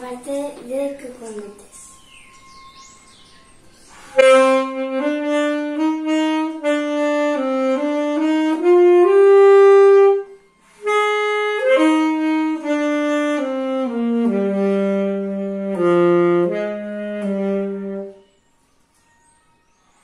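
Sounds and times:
solo saxophone melody: 0:04.1 - 0:19.8.

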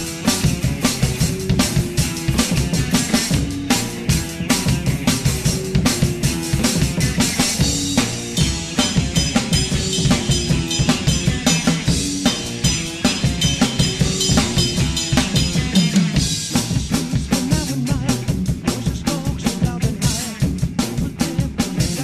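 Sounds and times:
drum kit played fast: 0:00.0 - 0:22.0
rock song guitar and bass: 0:00.0 - 0:22.0.

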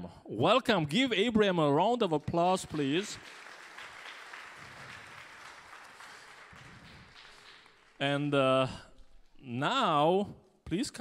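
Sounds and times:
audience applauding: 0:02.0 - 0:08.4.

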